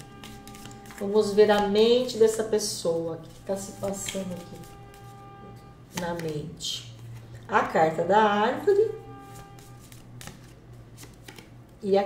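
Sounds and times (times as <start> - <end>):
cards being shuffled: 0.0 - 2.4, 3.2 - 5.1, 5.9 - 7.4, 9.2 - 11.6.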